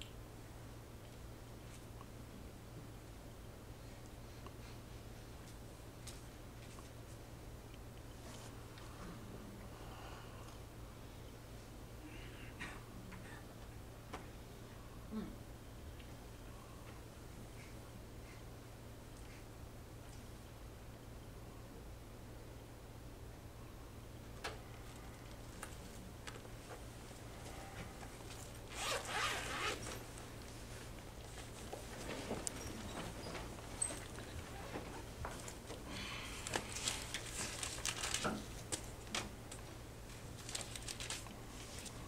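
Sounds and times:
steady low hum: 0.0 - 42.0
fabric rustling: 28.1 - 35.7.

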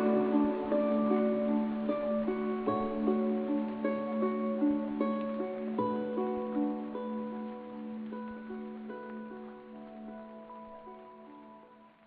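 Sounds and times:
plucked-string instrumental music: 0.0 - 11.3.

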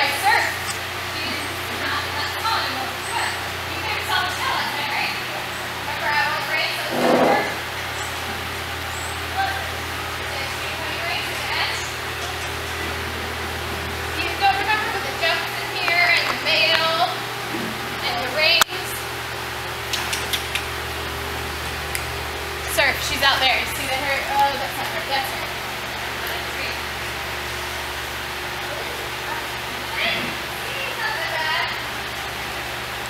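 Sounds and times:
indistinct voices talking: 0.0 - 19.1, 22.6 - 27.0
steady low hum: 0.0 - 33.0.

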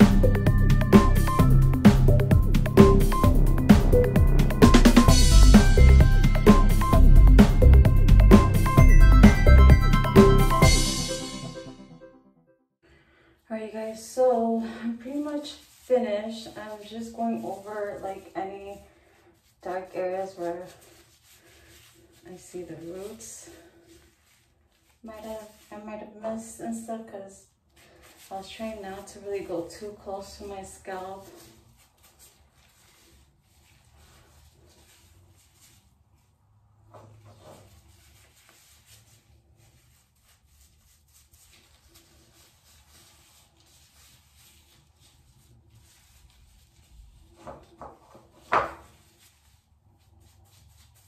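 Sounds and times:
woman speaking: 13.5 - 18.9, 19.6 - 20.8, 22.2 - 23.6, 25.0 - 27.5, 28.3 - 31.5
faint rubbing: 14.9 - 26.9, 27.7 - 51.0.

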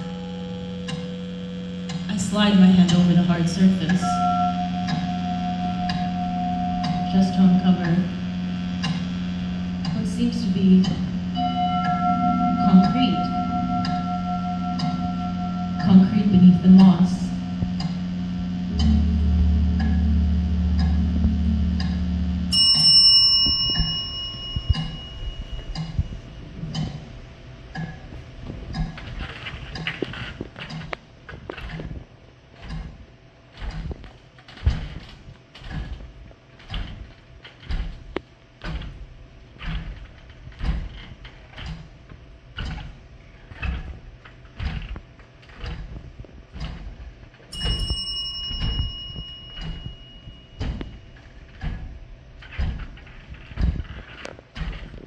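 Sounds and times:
low musical drone: 0.0 - 30.3
steady ticking clicks: 0.0 - 55.0
bell-like chime: 11.4 - 17.6, 22.5 - 26.2, 47.5 - 50.8.

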